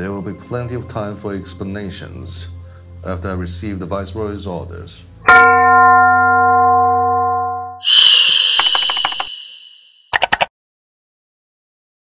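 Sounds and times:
bell-like chime ringing: 5.3 - 10.1.

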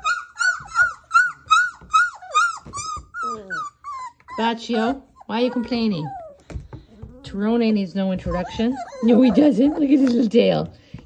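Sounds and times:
puppy whining in high yelps: 0.0 - 7.4, 8.2 - 10.0.

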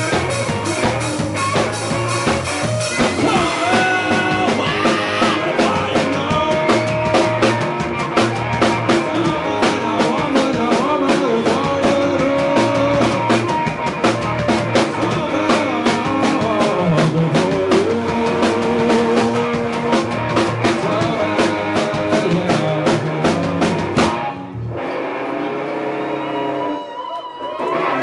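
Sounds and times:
live rock band playing: 0.0 - 28.0.

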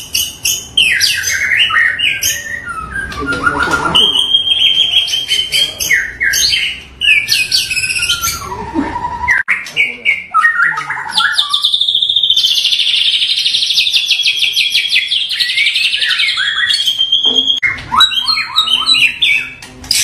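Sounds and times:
songbird singing whistled phrases: 0.0 - 20.0.

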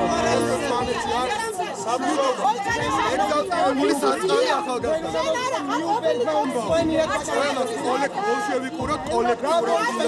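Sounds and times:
music: 0.0 - 8.0, 8.6 - 10.0
man and woman arguing: 0.0 - 10.0.

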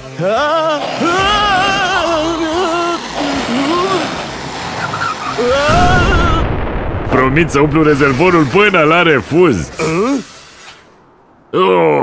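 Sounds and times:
race car engine rumbling: 0.0 - 10.2
snowstorm wind: 0.4 - 11.5
cartoon character wordless cries: 5.4 - 6.5.

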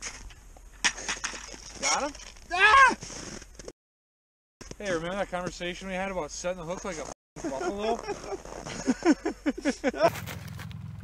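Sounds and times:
footsteps crunching in snow: 10.1 - 11.0.

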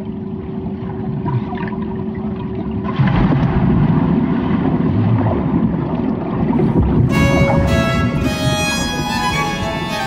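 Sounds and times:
water churning and bubbles: 0.0 - 9.7
underwater low rumble and hum: 0.0 - 10.0.

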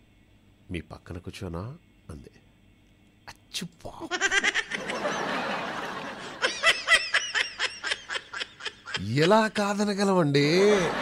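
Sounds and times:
person laughing: 6.1 - 9.6, 10.5 - 11.0.

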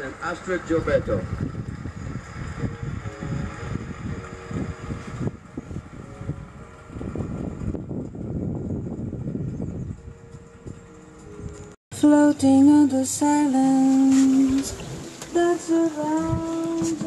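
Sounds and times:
wind gusting on microphone: 0.0 - 11.8, 13.9 - 17.0.

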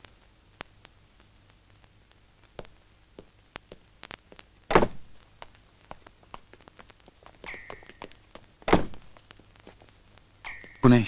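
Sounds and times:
heavy thud: 4.7 - 5.0, 8.6 - 9.1.

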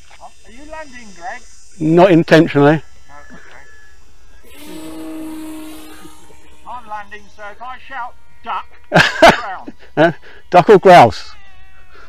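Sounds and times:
model plane motor buzzing: 0.0 - 12.0.

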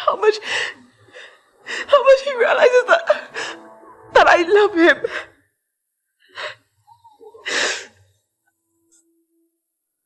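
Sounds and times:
sobbing breaths: 6.3 - 8.2.

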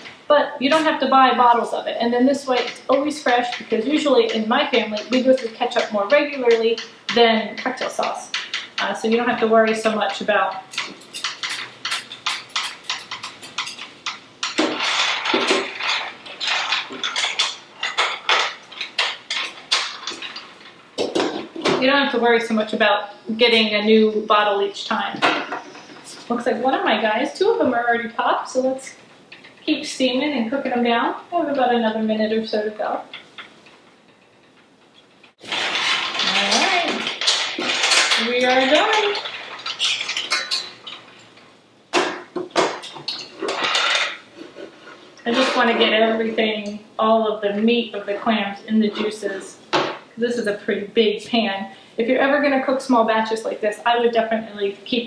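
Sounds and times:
clam shells clattering in a pan: 9.7 - 21.5, 35.4 - 41.4, 42.5 - 44.2.

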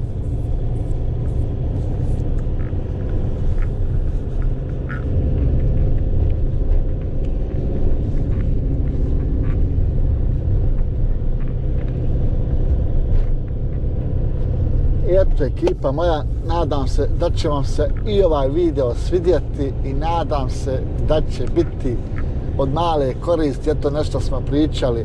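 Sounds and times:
van engine and road rumble: 0.0 - 25.0.

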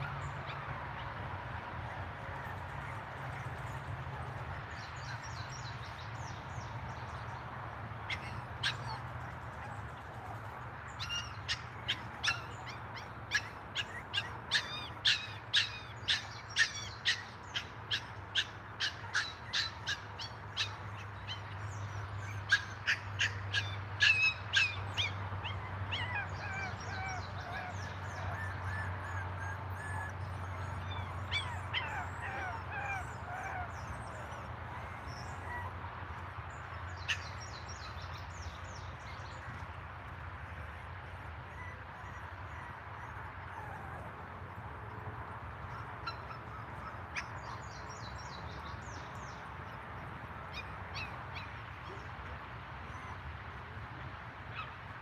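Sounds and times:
birds calling: 8.0 - 39.8.

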